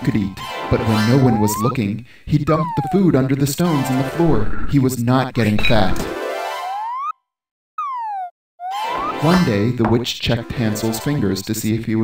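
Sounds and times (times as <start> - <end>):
cartoon tone sliding down: 0.9 - 1.8, 2.5 - 3.1, 6.6 - 7.2, 7.8 - 9.4
cartoon tone sliding up: 0.9 - 1.8, 2.5 - 3.1, 6.6 - 7.2, 7.8 - 9.4.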